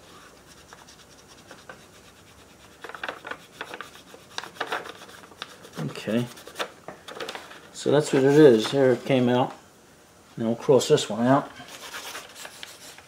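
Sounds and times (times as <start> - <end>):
fingertips scratching paper: 0.1 - 6.7, 11.7 - 13.0.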